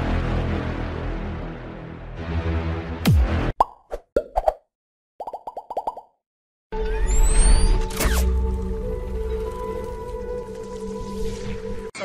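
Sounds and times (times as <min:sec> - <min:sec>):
cartoon plopping pops: 0:03.6 - 0:04.6, 0:05.2 - 0:06.2.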